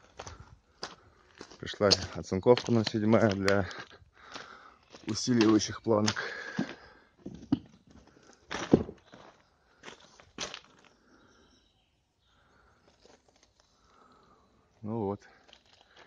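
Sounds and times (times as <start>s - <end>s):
footsteps crunching on rough ground: 0.0s - 11.1s, 12.8s - 14.2s, 15.3s - 16.0s.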